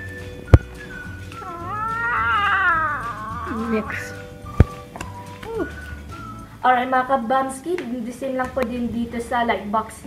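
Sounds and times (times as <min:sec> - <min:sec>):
wavering animal call: 0:01.4 - 0:04.7.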